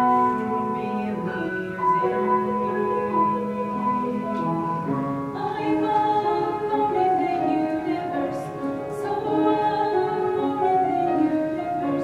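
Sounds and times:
voices singing in harmony: 0.0s - 12.0s.

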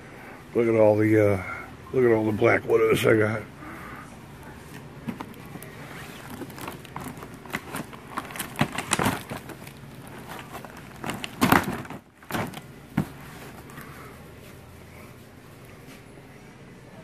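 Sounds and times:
rustling of cardboard boxes: 4.6s - 16.1s.

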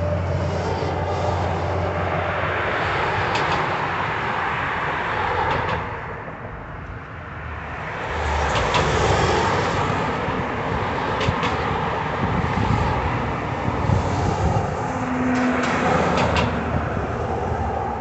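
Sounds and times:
road traffic passing: 0.0s - 18.0s.

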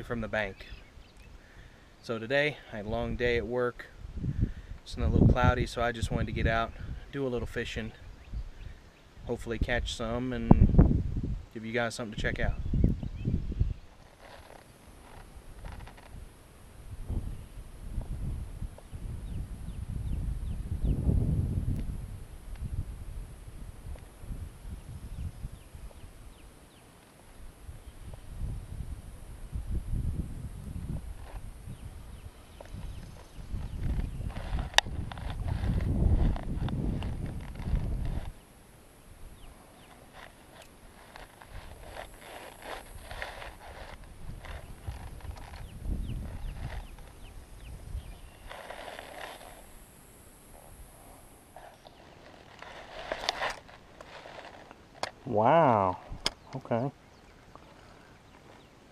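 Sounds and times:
wind buffeting microphone: 2.8s - 11.5s, 12.2s - 26.5s, 27.4s - 38.5s, 39.1s - 56.5s
rustling reeds: 13.8s - 17.9s, 23.9s - 56.2s.

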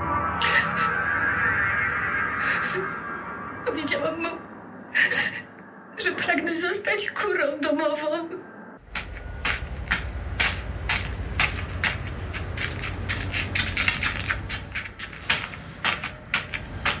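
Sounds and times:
steady low rumble: 8.8s - 17.0s.

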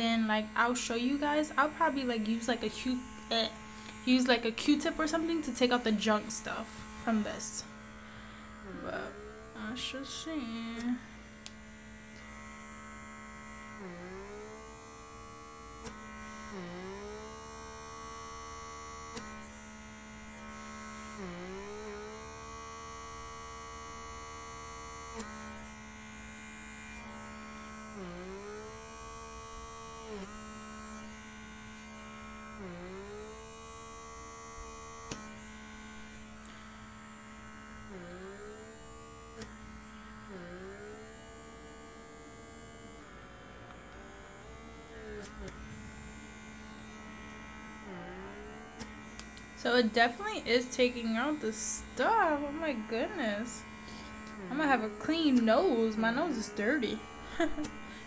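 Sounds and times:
small electric motor humming: 0.0s - 58.0s.

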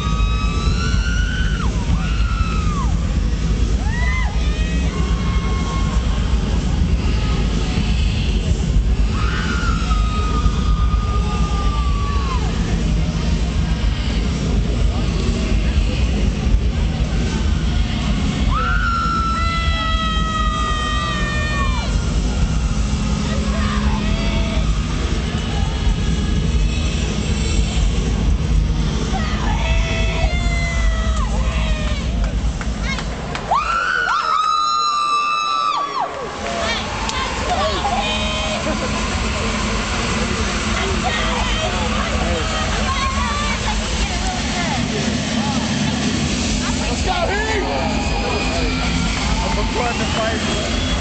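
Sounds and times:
crowd noise: 0.0s - 51.0s
booming bass from loudspeakers: 9.8s - 18.6s, 19.4s - 32.8s, 37.2s - 51.0s.

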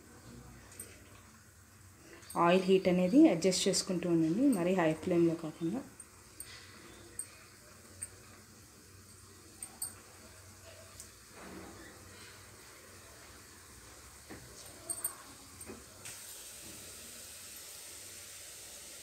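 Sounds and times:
small crackles of frying: 0.0s - 19.0s
dough sizzling in hot oil: 1.2s - 19.0s.

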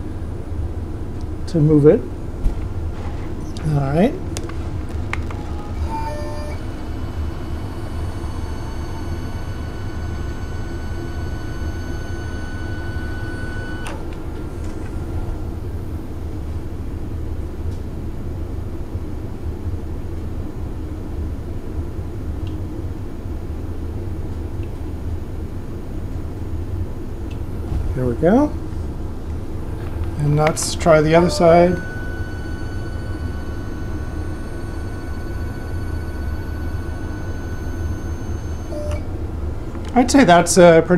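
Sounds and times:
milling machine humming: 0.0s - 17.2s, 26.4s - 40.9s
table drive whining: 5.2s - 15.7s, 27.4s - 39.1s.

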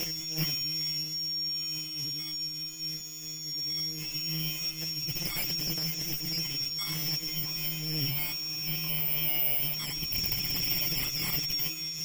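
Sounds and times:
machine humming with high whine: 0.0s - 12.0s.

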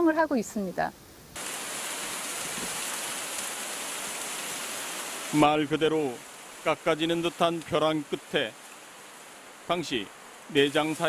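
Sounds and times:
running water rushing: 1.4s - 11.0s.

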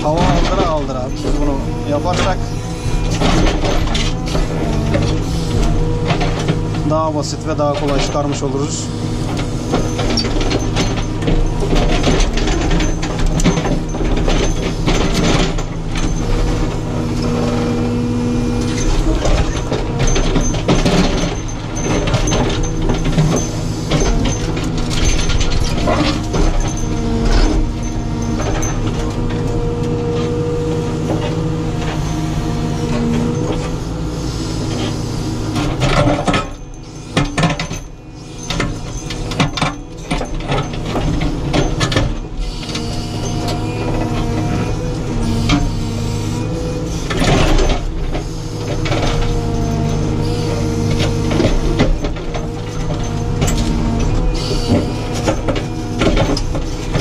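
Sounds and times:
diesel engine under load: 0.0s - 57.0s
hydraulic whine: 0.0s - 57.0s.

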